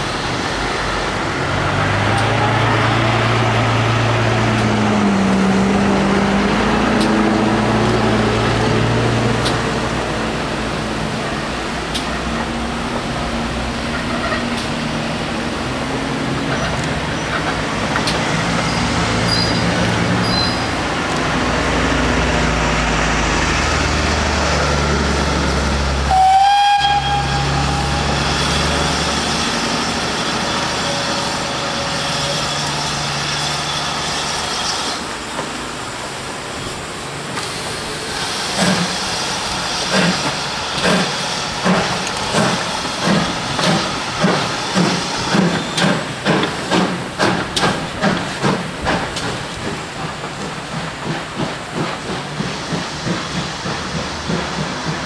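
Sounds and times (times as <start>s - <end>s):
steam train passing: 0.0s - 55.0s
steam locomotive whistle: 26.1s - 34.3s.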